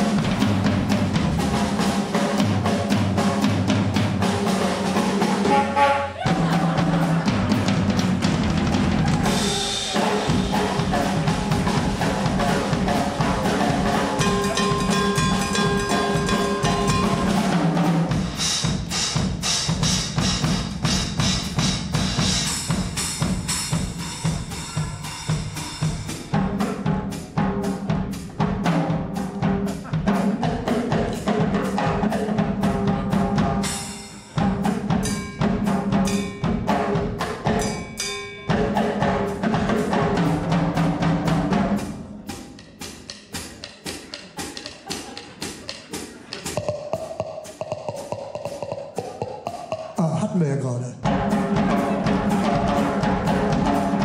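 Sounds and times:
drum kit solo: 0:00.0 - 0:54.0.

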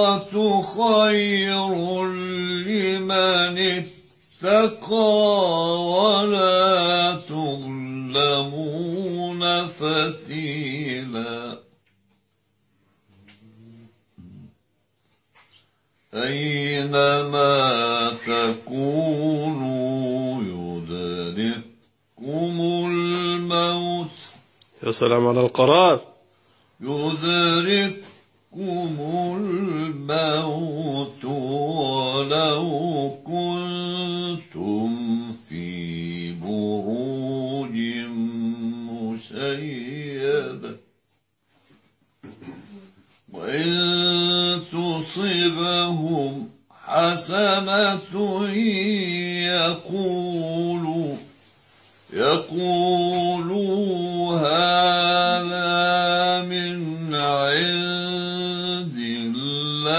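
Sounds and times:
elderly man reciting melodically: 0:00.0 - 0:12.4, 0:13.0 - 0:41.8, 0:43.0 - 0:59.9.

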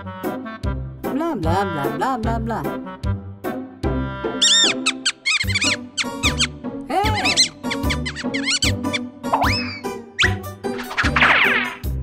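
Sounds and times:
cartoon music with bouncy bass: 0:00.0 - 0:12.0
high squeaky chirps: 0:04.4 - 0:10.4.

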